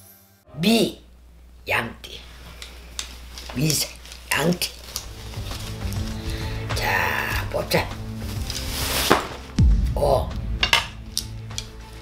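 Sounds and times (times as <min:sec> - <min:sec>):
wooden sticks clacking: 0:02.5 - 0:09.5, 0:10.6 - 0:12.0.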